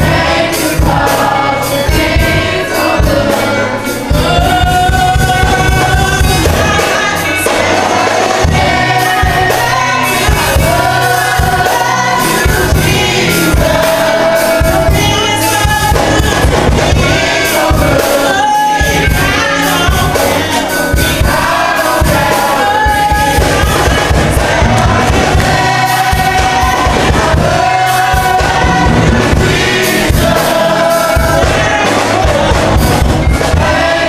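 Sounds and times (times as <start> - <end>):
gospel choir singing: 0.0 - 34.0
instrumental accompaniment with beat: 0.0 - 34.0.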